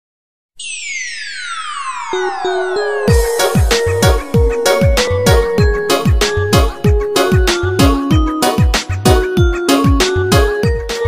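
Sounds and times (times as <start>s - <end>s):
synth tone sliding down: 0.6s - 6.8s.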